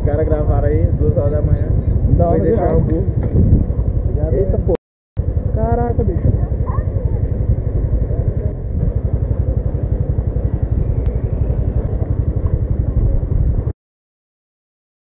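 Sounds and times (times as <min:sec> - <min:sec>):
scooter engine idling: 0:00.0 - 0:13.7.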